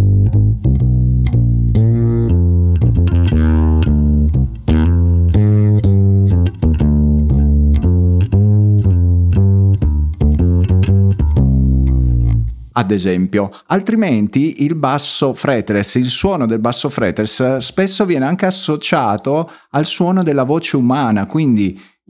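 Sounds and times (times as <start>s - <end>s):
fretless bass plucked notes: 0.0s - 14.2s.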